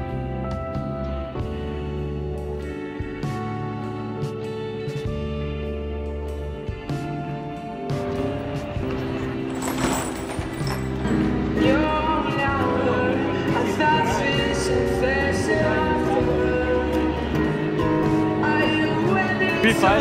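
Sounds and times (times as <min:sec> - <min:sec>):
person singing: 0:11.6 - 0:17.4, 0:18.3 - 0:20.0.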